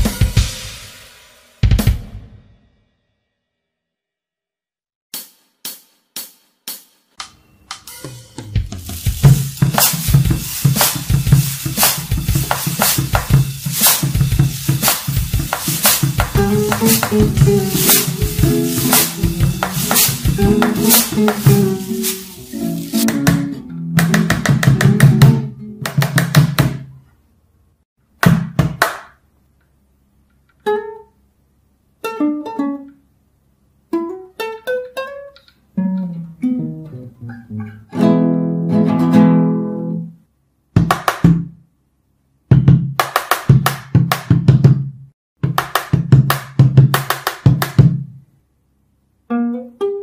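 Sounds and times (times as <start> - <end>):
drum kit beat with bass: 0.0 - 2.4, 5.1 - 26.8, 42.5 - 48.1
guitar strummed quickly: 8.0 - 23.6.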